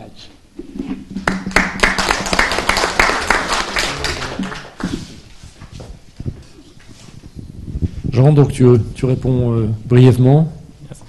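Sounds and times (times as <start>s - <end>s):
audience applauding: 1.2s - 5.0s.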